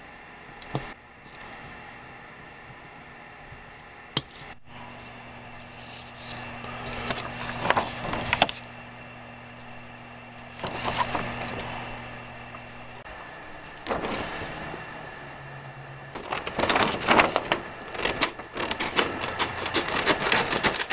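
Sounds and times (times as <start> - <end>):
low electrical hum: 0.0 - 20.9
plastic sheet crinkling: 5.6 - 8.7, 10.4 - 11.8, 12.9 - 14.9, 16.1 - 20.9.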